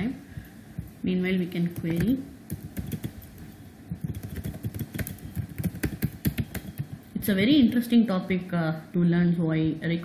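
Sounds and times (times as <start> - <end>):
computer keyboard typing: 1.6 - 7.4.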